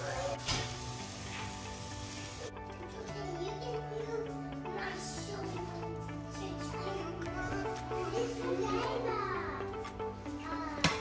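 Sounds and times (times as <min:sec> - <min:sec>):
apples sizzling in a frying pan: 0:00.0 - 0:02.5
soft background music: 0:00.0 - 0:11.0.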